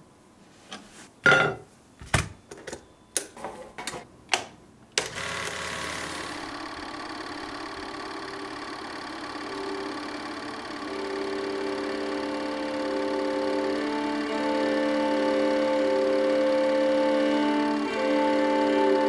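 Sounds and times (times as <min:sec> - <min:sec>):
film projector running: 0:05.0 - 0:19.0
music with long held notes: 0:06.4 - 0:19.0.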